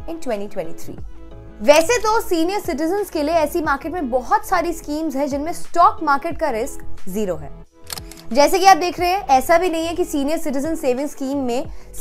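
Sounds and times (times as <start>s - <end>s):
woman speaking: 0.0s - 1.0s, 1.6s - 7.6s, 8.2s - 11.7s
background music: 0.0s - 12.0s.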